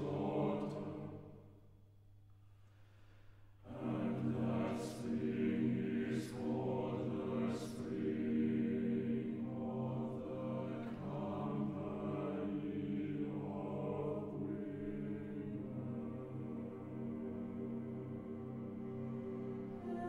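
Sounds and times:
choir singing chant-like chords: 0:00.0 - 0:01.4, 0:03.6 - 0:20.0.

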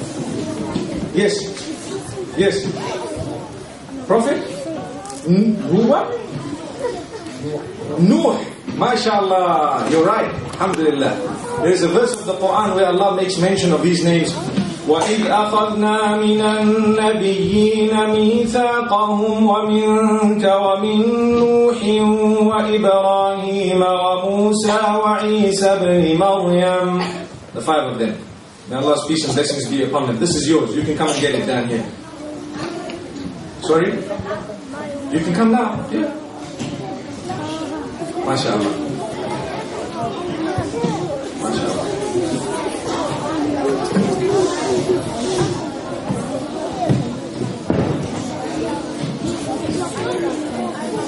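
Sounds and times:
children chattering: 0:00.0 - 0:51.0.

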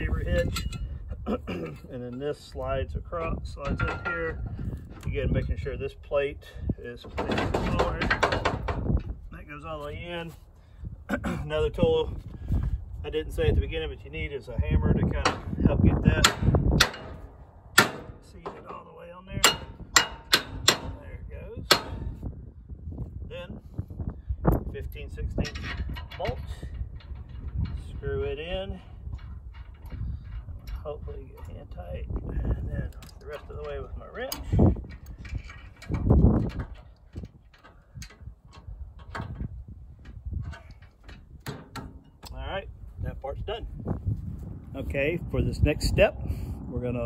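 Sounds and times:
metal scraping: 0:33.1 - 0:42.2.

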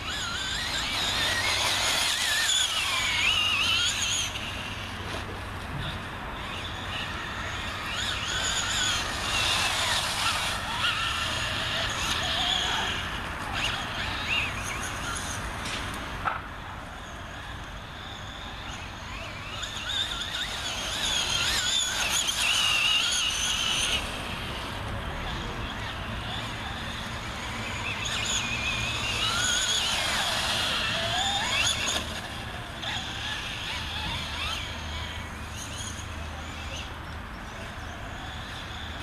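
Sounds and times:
toy truck electric motor whining: 0:00.0 - 0:15.8, 0:16.8 - 0:39.0.

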